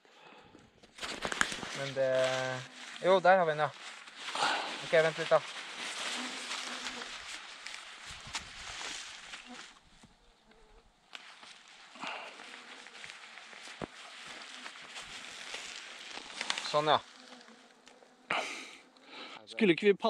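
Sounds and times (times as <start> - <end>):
low rustle: 1.0 - 18.1
flying insects buzzing: 1.1 - 19.5.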